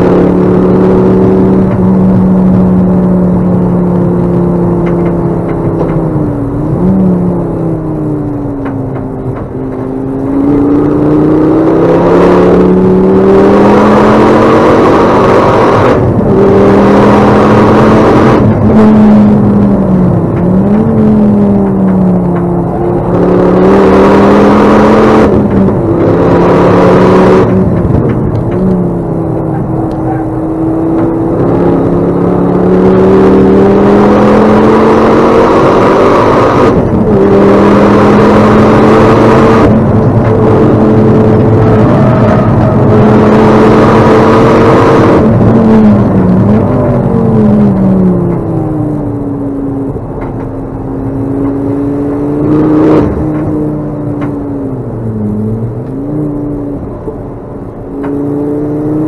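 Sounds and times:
car engine revving: 0:00.0 - 0:59.0
road and wind noise: 0:00.0 - 0:59.0.

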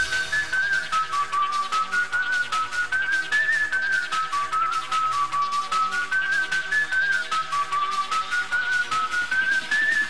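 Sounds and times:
electronic dance beat: 0:00.0 - 0:10.0
whistle-like synth lead melody: 0:00.0 - 0:10.0.

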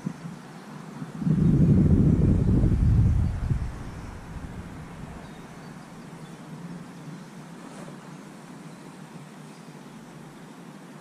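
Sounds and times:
faint low hum: 0:00.0 - 0:11.0
wind buffeting microphone: 0:01.1 - 0:05.8.

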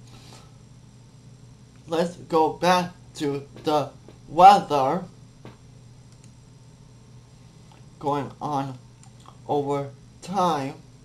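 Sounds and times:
low steady room hum: 0:00.0 - 0:11.0
computer mouse click: 0:06.1 - 0:06.4.

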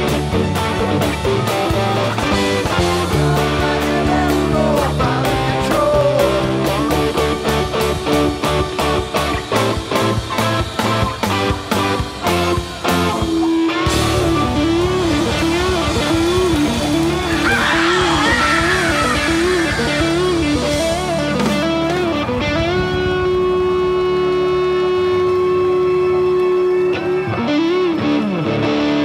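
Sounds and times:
bass guitar: 0:00.0 - 0:29.0
drums: 0:00.0 - 0:29.0
electric guitar lead: 0:00.0 - 0:29.0.

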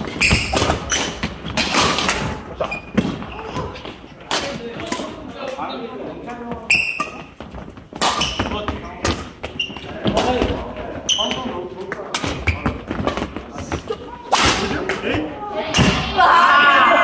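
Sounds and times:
voices in echoing hall: 0:00.0 - 0:17.0.

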